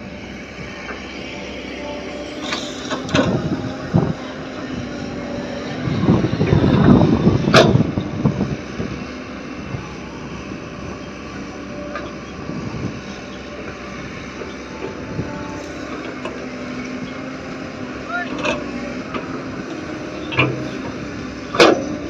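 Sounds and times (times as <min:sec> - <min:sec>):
excavator diesel engine running: 0:00.0 - 0:22.0.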